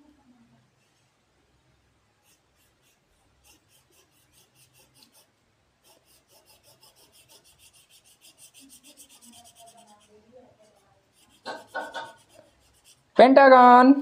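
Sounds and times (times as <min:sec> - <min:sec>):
marker scratching on paper: 0:02.2 - 0:13.2.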